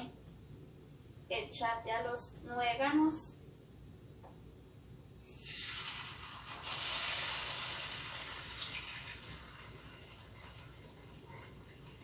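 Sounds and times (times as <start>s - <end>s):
dough sizzling in hot oil: 5.2s - 12.0s.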